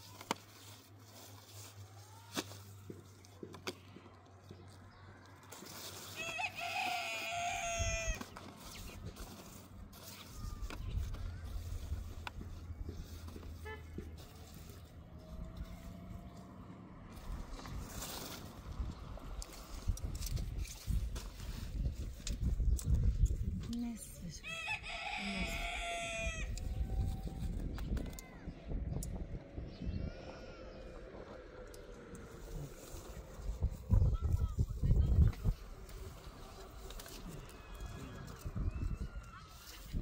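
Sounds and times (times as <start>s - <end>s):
rooster crowing: 6.1s - 8.2s, 24.4s - 26.6s
low rumble: 26.4s - 39.3s.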